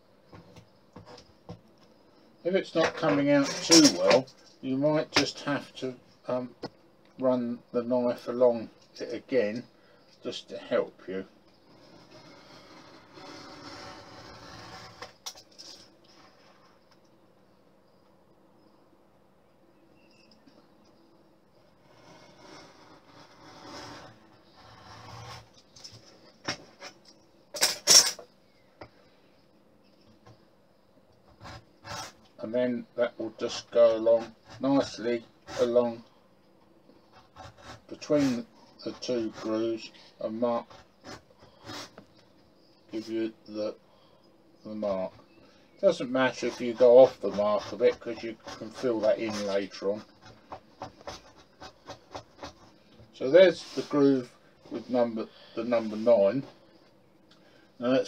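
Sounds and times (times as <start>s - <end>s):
lino cutter scraping wood: 11.7s - 15.3s, 21.8s - 25.6s, 33.4s - 36.0s, 37.1s - 42.1s, 46.0s - 52.7s
knife blade scraping wood: 46.3s - 52.6s.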